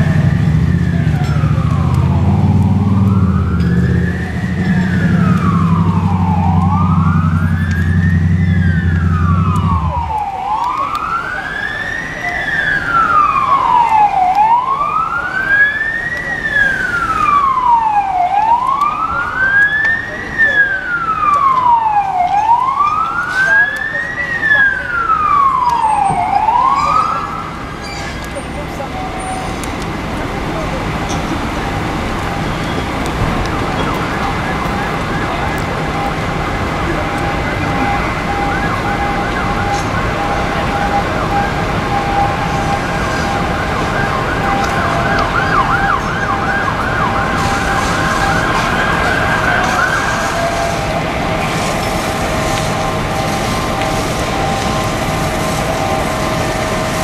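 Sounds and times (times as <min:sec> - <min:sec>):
emergency vehicle siren wailing: 0:00.0 - 0:57.0.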